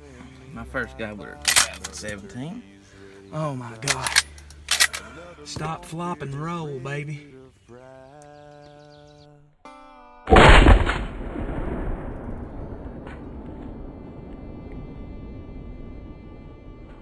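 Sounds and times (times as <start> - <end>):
loud gunshot-like boom: 10.3 - 15.4.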